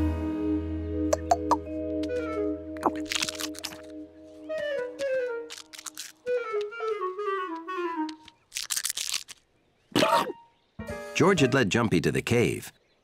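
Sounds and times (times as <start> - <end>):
woodwind cartoon music: 1.1 - 8.4
quick crunching sounds: 2.8 - 3.9, 5.0 - 6.8, 8.1 - 10.1.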